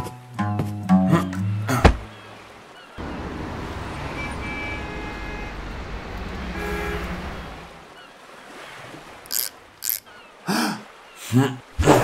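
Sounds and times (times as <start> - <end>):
distant city traffic rumble: 3.0 - 8.0
car horn toots: 4.0 - 5.8, 6.4 - 7.6.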